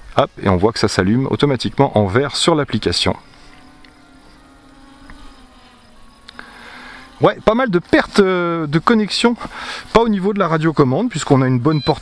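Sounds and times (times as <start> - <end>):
drone buzzing hum: 0.0 - 12.0.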